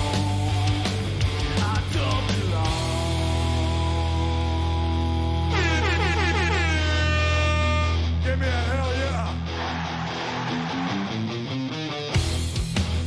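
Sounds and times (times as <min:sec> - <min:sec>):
electric guitar bending notes: 0:02.9 - 0:08.2.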